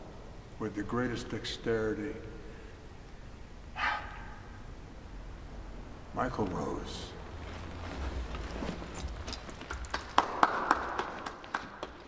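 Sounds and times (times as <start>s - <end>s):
people clapping: 9.5s - 12.0s.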